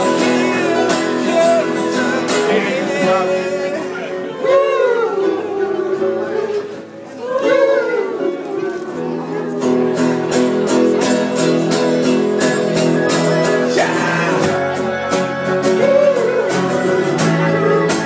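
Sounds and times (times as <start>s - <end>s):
man singing: 0.0s - 5.2s, 13.5s - 15.0s
electric guitar: 0.0s - 18.0s
strummed acoustic guitars: 0.0s - 18.0s.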